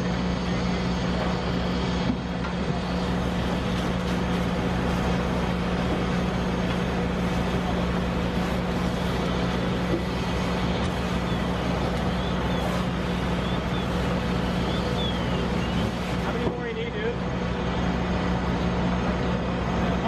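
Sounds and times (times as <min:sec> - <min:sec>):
fire engine pump droning: 0:00.0 - 0:20.0
hose spraying water: 0:02.5 - 0:17.1.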